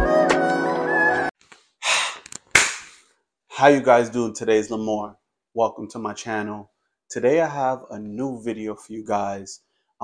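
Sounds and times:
man exhaling loudly: 1.8s - 2.3s.

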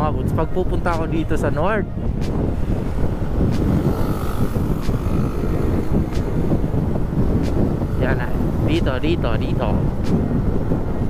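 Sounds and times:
wind rushing over microphone: 0.0s - 11.0s
motorcycle engine: 2.4s - 8.8s.

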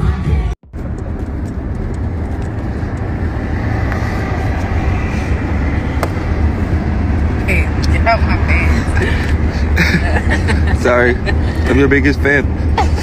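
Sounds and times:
car cabin rumble: 0.7s - 13.0s.

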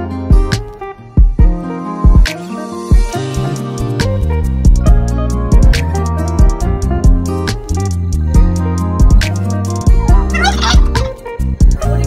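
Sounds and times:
background music with bass: 0.0s - 12.0s
turkey gobbling: 10.3s - 11.1s.

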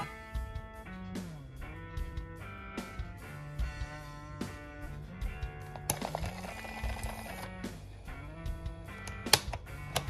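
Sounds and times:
music from cassette player: 0.0s - 10.0s.

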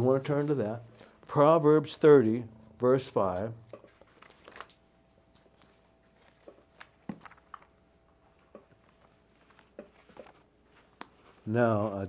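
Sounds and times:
paper pages rustling: 3.2s - 12.0s.

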